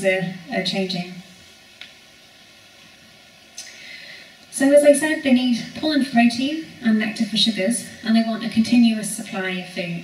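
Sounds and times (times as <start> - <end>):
woman talking: 0.0 - 1.2, 4.5 - 10.0
steady hiss: 0.0 - 10.0
faint click: 3.6 - 3.8.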